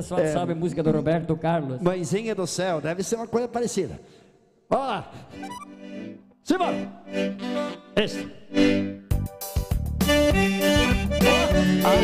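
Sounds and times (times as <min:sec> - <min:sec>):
accordion chords: 0:05.2 - 0:12.0
electronic keyboard chords: 0:05.4 - 0:12.0.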